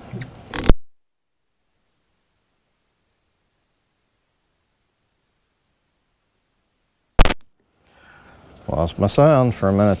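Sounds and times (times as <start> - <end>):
microphone glitch pop: 0.6 - 1.0, 7.2 - 7.5.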